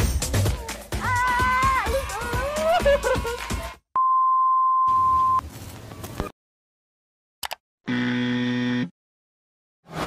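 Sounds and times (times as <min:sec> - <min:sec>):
cursor clicks: 0:07.4 - 0:07.6
buzzer tone: 0:07.9 - 0:08.9.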